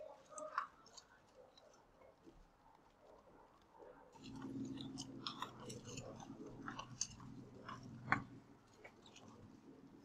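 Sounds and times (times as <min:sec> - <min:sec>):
stylus clicking and scratching: 0:00.0 - 0:10.0
low steady hum: 0:04.2 - 0:10.0.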